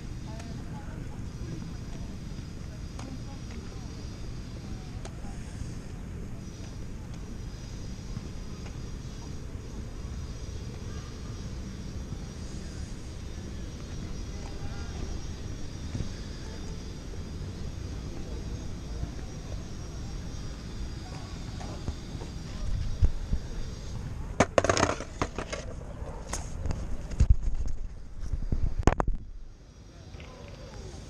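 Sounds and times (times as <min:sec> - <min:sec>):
skateboard wheels rolling on stone: 0:24.3 - 0:29.2.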